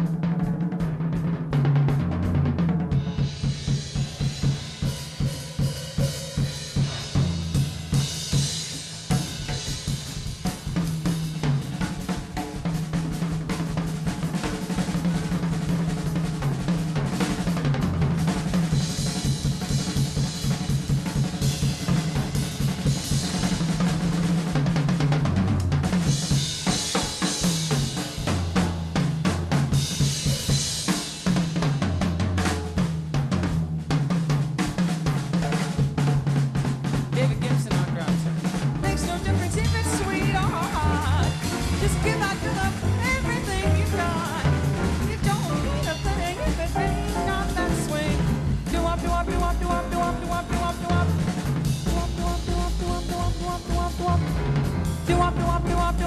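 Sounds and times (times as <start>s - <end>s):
jazz drum kit solo: 0.0s - 56.0s
upright bass line: 37.1s - 56.0s.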